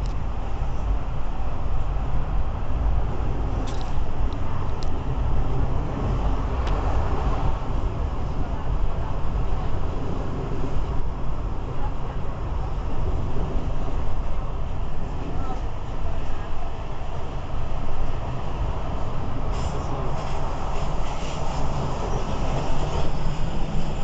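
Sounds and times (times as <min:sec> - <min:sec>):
train rumbling on rails: 0:00.0 - 0:24.0.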